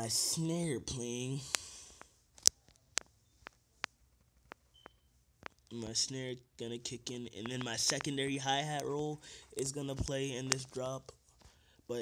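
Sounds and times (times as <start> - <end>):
fingertips tapping touchscreen: 1.0 - 6.1, 6.7 - 11.6
faint high beep: 4.7 - 5.1.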